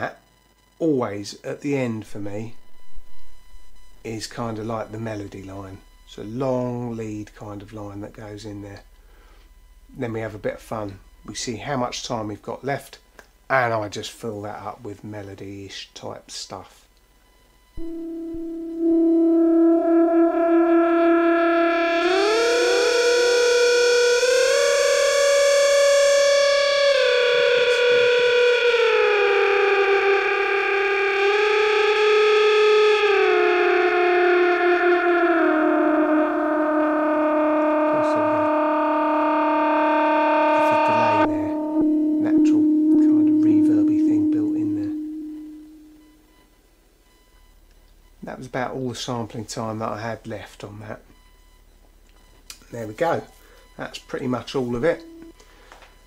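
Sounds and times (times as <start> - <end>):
synth lead melody with delay: 2.4 - 7.0, 17.8 - 46.4, 54.6 - 55.4.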